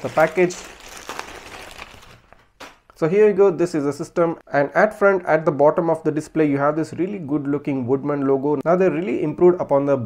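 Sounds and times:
plastic bag crinkling: 0.0 - 2.9.

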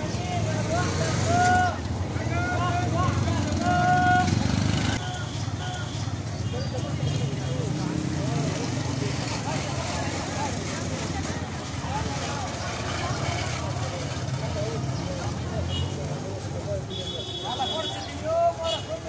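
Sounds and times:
crowd voices talking: 0.0 - 19.0.

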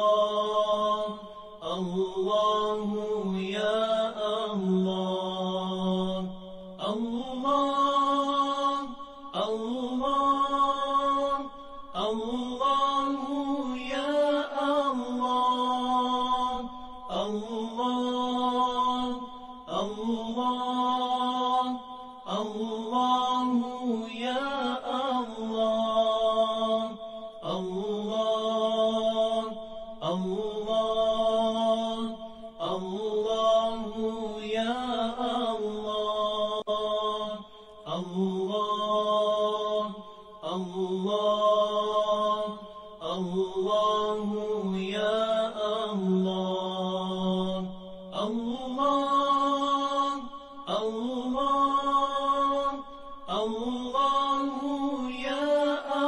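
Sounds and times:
person chanting melodically: 0.0 - 56.0.

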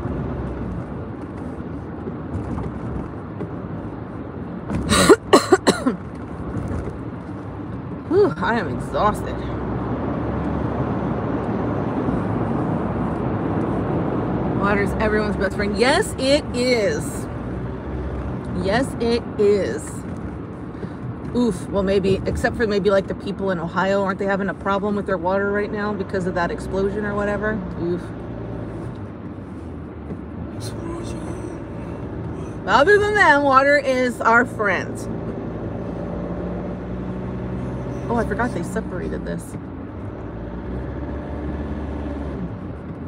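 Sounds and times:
car road and engine noise: 0.0 - 43.0.

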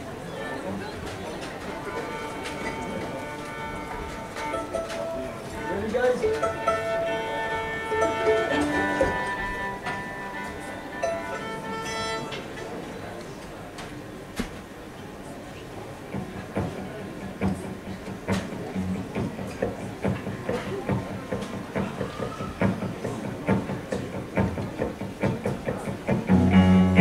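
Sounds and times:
crowd murmur: 0.0 - 27.0
violins playing held notes: 1.7 - 12.8, 26.3 - 27.0.

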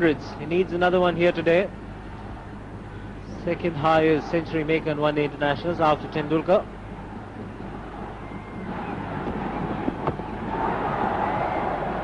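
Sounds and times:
stadium crowd noise: 2.2 - 12.0.

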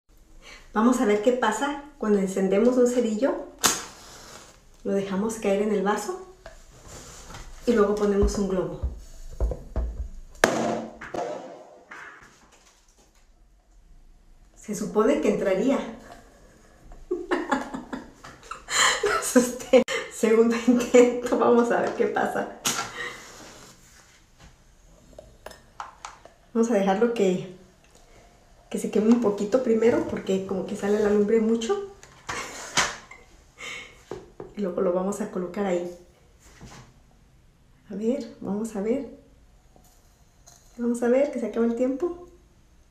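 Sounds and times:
woman's breathy laugh: 17.1 - 20.1.

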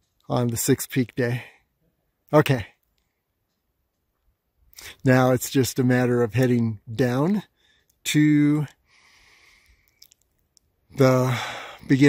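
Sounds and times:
faint clicks: 2.8 - 4.8, 7.8 - 8.0, 9.5 - 10.8
faint breath through mouth: 8.8 - 10.0.

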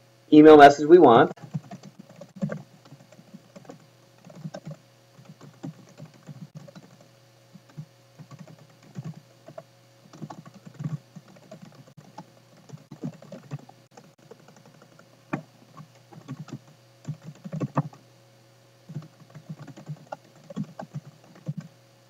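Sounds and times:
faint steady hum: 0.0 - 22.0
typing on computer keyboard: 1.4 - 18.0, 18.9 - 21.7.

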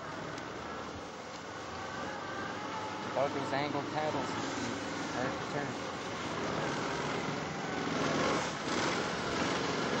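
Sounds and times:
small engine running steadily: 0.0 - 10.0
tracks churning snow: 0.0 - 10.0.

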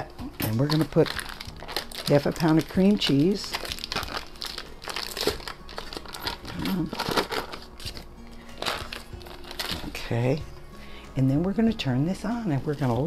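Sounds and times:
foil wrapper crinkling: 0.4 - 10.3.

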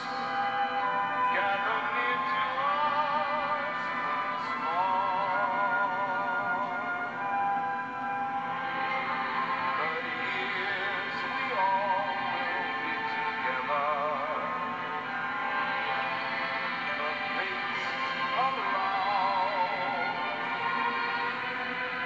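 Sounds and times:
christmas song on radio: 0.0 - 22.0.

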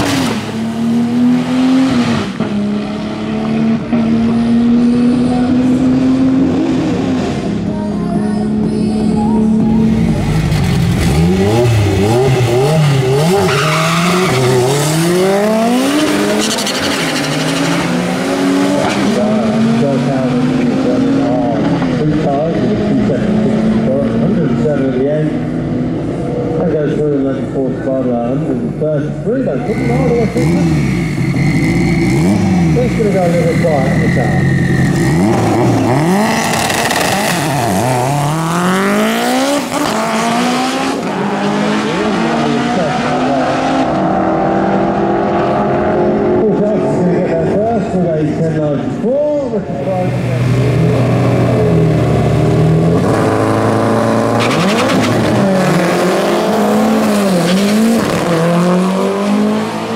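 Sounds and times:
racing car accelerating through gears: 0.0 - 7.7, 9.4 - 26.8, 29.6 - 47.6, 50.2 - 59.9
cars revving with high whine: 0.0 - 59.9.

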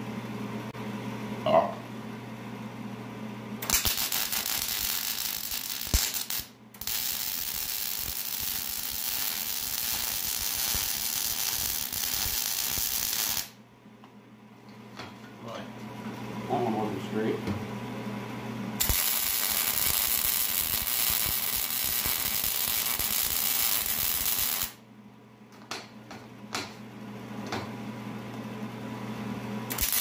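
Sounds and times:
welder arc crackling: 3.6 - 13.6, 18.8 - 24.8, 29.7 - 30.0.

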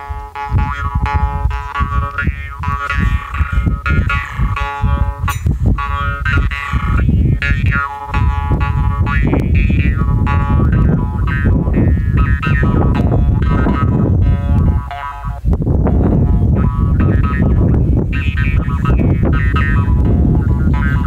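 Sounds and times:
jaw harp playing: 0.0 - 21.0.

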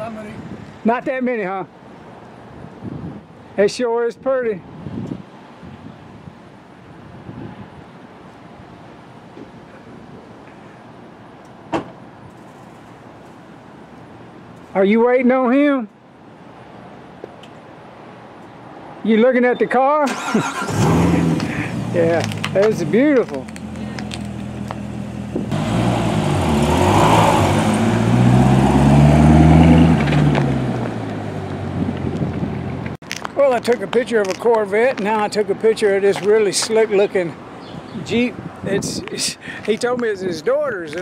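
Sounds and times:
car engine pulling away: 20.1 - 32.9.

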